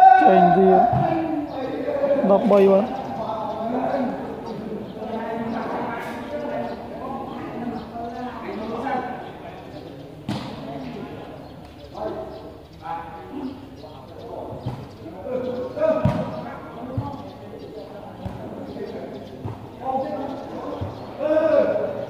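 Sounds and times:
spectators talking and calling out: 0.0 - 22.0.

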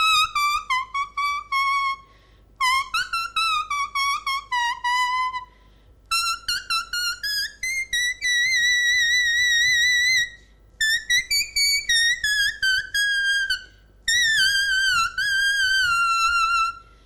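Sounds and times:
solo wind instrument melody: 0.0 - 5.5, 6.1 - 16.9.

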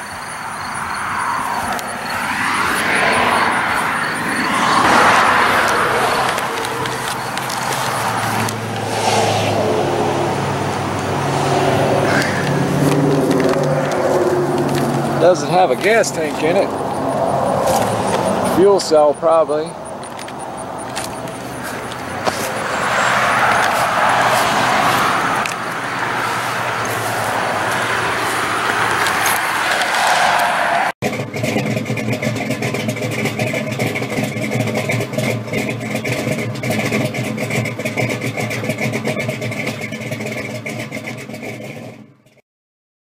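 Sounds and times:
outdoor rushing noise: 0.0 - 39.5
car engine running: 0.0 - 42.4.

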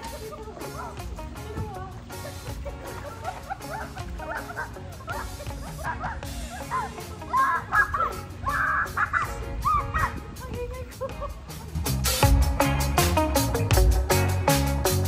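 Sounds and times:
upbeat background music: 0.0 - 15.0
children shrieking and shouting: 3.4 - 11.1.

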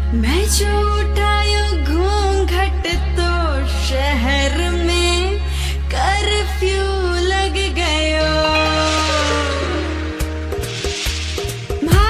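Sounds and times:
person singing ornamented melody: 8.2 - 10.4.

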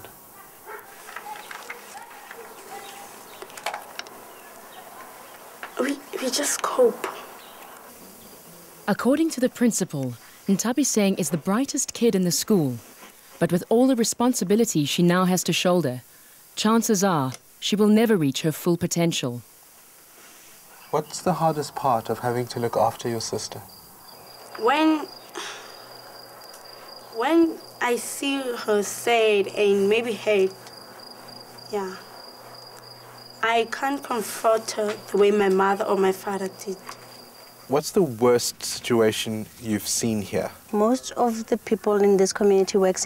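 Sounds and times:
cricket trilling: 0.0 - 12.9, 20.6 - 43.0
background hiss: 0.0 - 43.0.

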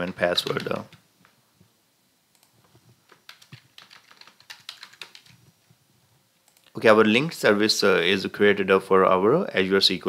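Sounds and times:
computer keyboard typing: 0.0 - 1.0, 2.4 - 5.4.

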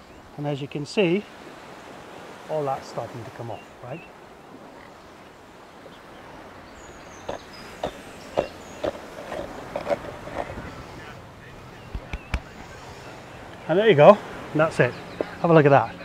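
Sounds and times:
coconut scraped against knife: 7.3 - 10.8.

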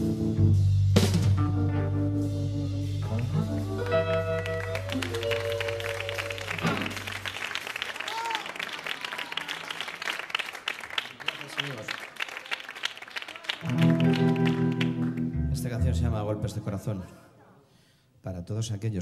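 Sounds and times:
electric guitar and bass chord ringing: 0.0 - 7.2, 13.7 - 16.4
sustained electric guitar tones: 1.5 - 7.4, 13.7 - 16.7
audience clapping and cheering: 3.2 - 15.4.

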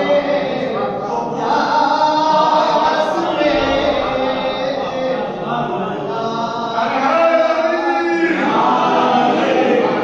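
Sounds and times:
man singing unaccompanied chant: 0.0 - 10.0.

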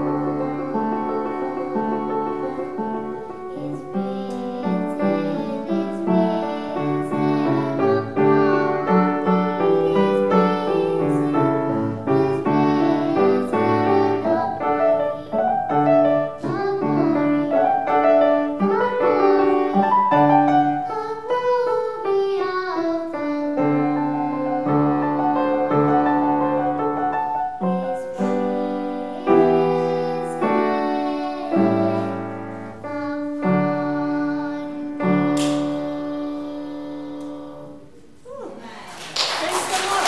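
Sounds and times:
piano chords: 0.0 - 38.6
girl singing a hymn: 0.0 - 40.0.

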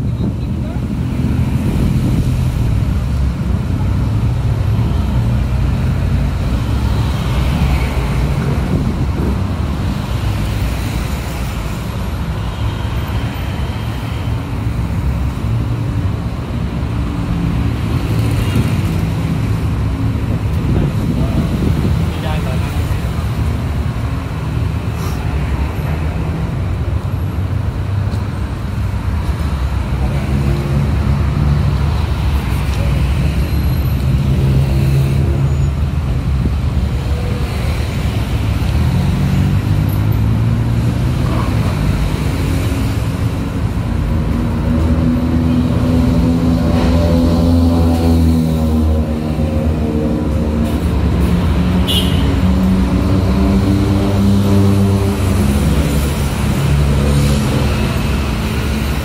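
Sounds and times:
city road traffic: 0.0 - 59.0.

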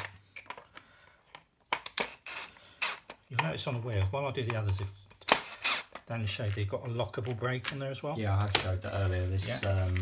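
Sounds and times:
drill bit scraping plastic: 1.9 - 3.2, 4.5 - 6.1.

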